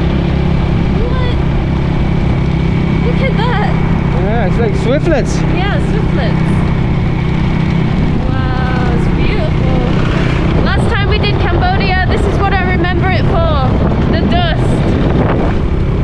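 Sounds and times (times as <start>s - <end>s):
motorbike engine running: 0.0s - 16.0s
wind rush on microphone: 0.0s - 16.0s.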